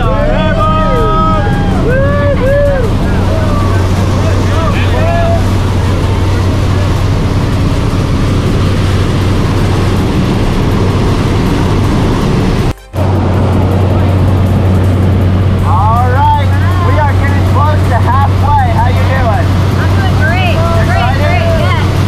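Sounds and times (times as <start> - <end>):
voices calling out: 0.0 - 8.5
plane engine and propeller drone: 0.0 - 22.0
rushing air: 0.0 - 22.0.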